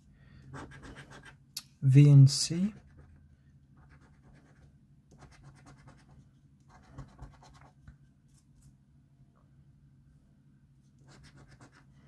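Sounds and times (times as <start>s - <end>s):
coin scratching a scratchcard: 11.1s - 11.8s.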